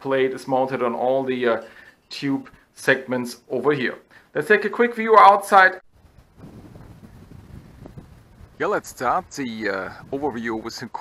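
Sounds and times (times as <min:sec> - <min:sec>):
wind buffeting microphone: 0:05.9 - 0:11.0.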